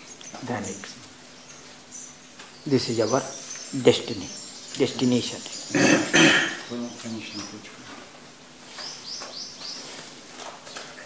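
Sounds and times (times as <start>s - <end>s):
small bird chirping: 0.0s - 8.0s, 8.6s - 11.0s.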